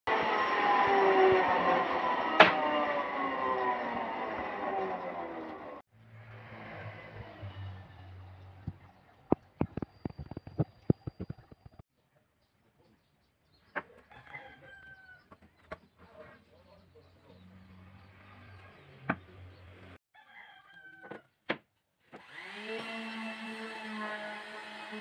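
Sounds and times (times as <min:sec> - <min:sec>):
woodshop machine whine: 0:00.1 - 0:05.8, 0:22.2 - 0:25.0.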